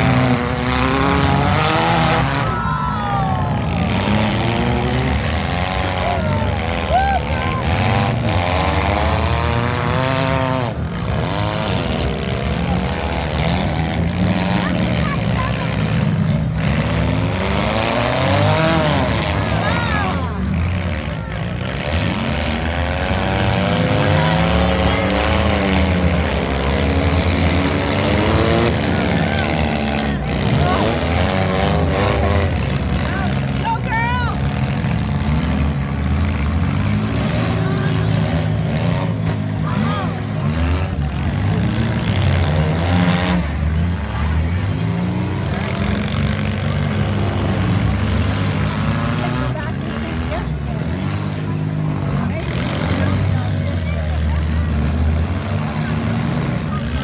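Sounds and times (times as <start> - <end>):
car engines revving: 0.0 - 57.0
crowd voices: 0.0 - 57.0.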